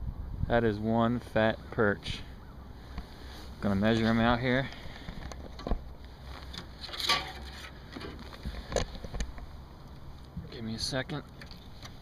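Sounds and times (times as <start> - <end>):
low rumble of wind: 0.0 - 12.0.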